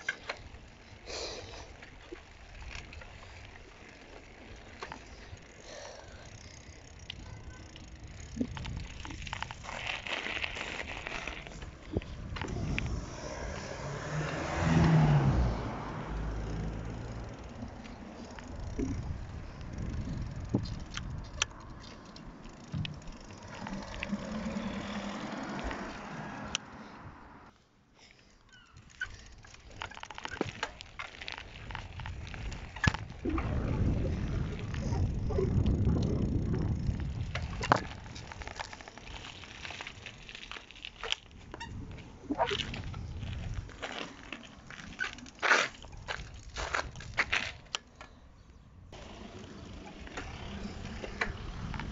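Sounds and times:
bicycle tyre rolling on pavement: 0.0s - 51.9s
bike clicks and rattles: 0.0s - 51.9s
wind rumbling on microphone: 7.1s - 27.4s, 29.1s - 47.7s, 48.4s - 51.9s.

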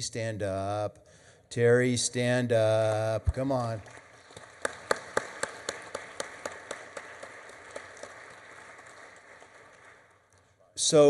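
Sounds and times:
person clapping steadily: 2.9s - 10.1s
light applause: 2.9s - 10.5s.

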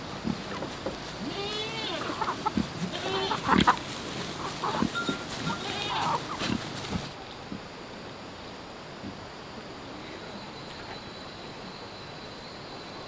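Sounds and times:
pigs grunting: 0.0s - 7.1s
hens clucking: 0.0s - 7.6s.

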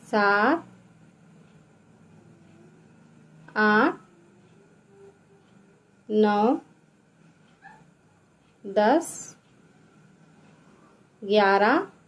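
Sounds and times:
woman speaking: 0.0s - 0.7s, 3.5s - 4.0s, 6.1s - 6.7s, 8.6s - 9.4s, 11.2s - 12.0s.

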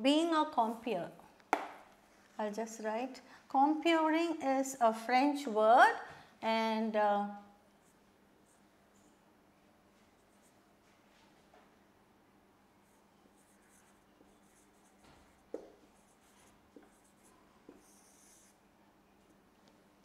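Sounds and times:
marker pen squeaking on whiteboard: 12.8s - 18.6s.

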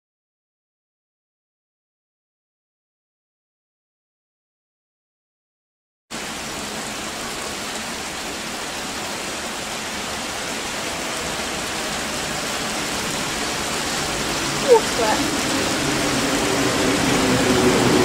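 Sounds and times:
rain hissing: 6.1s - 18.0s
electric train approaching: 9.8s - 18.0s.

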